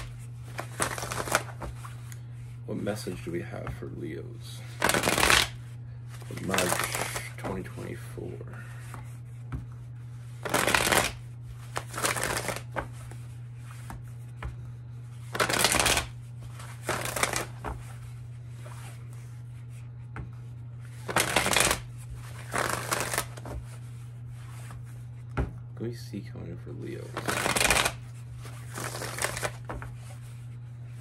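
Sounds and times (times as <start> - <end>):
cards being shuffled: 0.0 - 3.8, 4.6 - 8.0, 8.8 - 25.6, 27.0 - 31.0
steady low hum: 0.0 - 31.0.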